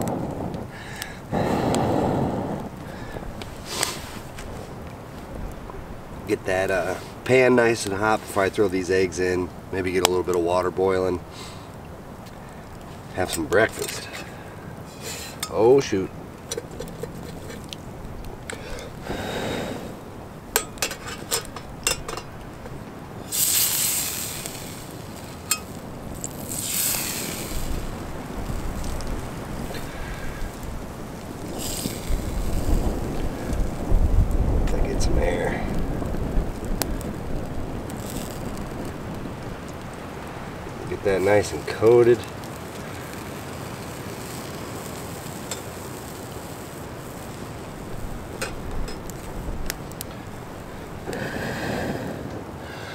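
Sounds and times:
campfire crackling and popping: 0:00.0 - 0:52.9
wind rumbling on microphone: 0:00.0 - 0:52.9.

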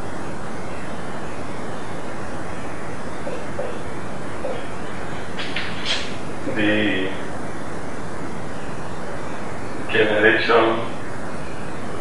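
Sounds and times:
background hiss: 0:00.0 - 0:12.0
marker squeaking on whiteboard: 0:05.4 - 0:06.2.

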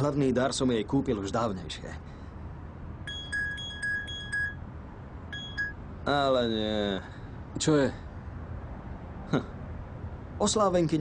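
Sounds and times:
phone alert beeps: 0:03.1 - 0:04.6, 0:05.3 - 0:05.8.

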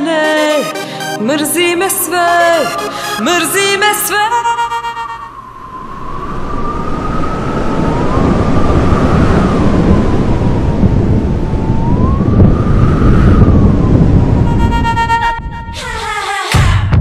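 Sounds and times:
siren wailing: 0:02.3 - 0:16.1
loud rumbling noise: 0:05.3 - 0:16.7.

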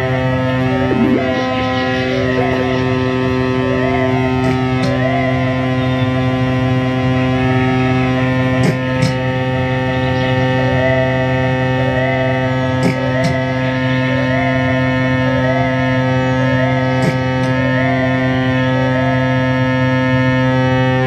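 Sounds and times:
electronic drone: 0:00.0 - 0:21.0
wavering pitched figure: 0:00.0 - 0:21.0.

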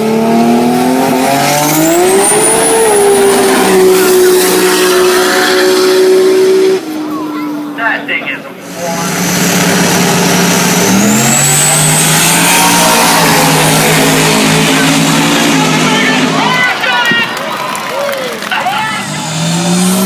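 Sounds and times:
racing car engine at full throttle: 0:00.0 - 0:17.3, 0:18.4 - 0:20.0.

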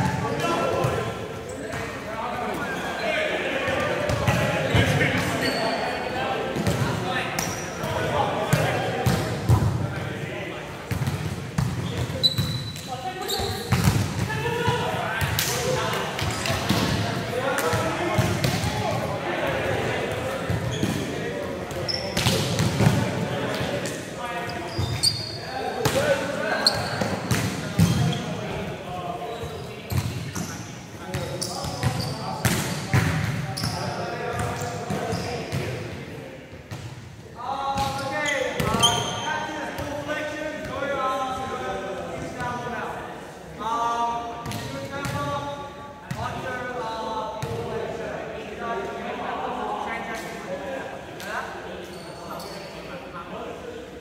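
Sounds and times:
players calling and chatting: 0:00.0 - 0:54.0.

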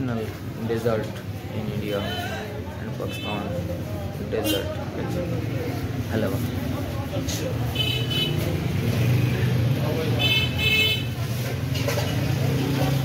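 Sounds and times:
traffic engine rumble: 0:00.0 - 0:13.0
vehicle horn honking: 0:10.2 - 0:11.2.

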